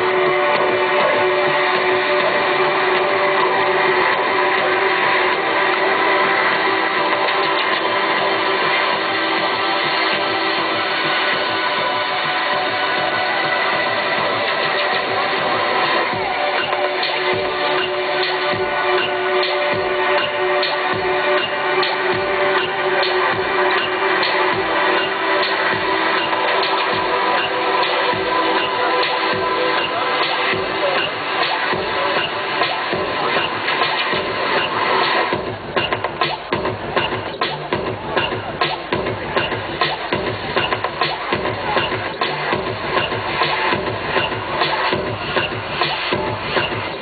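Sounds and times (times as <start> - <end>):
live electronic music: 0.0 - 47.0
deep kick drums: 35.3 - 47.0.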